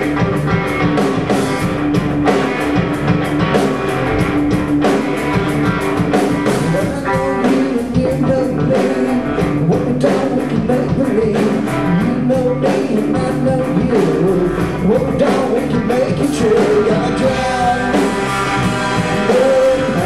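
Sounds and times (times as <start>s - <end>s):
drum kit steady beat: 0.0s - 20.0s
electric bass: 0.0s - 20.0s
electric guitar: 0.0s - 20.0s.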